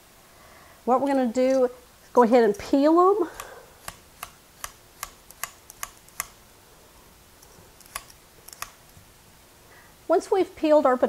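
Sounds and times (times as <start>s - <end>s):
peeler scraping potato skin: 1.0s - 6.4s, 7.4s - 9.0s.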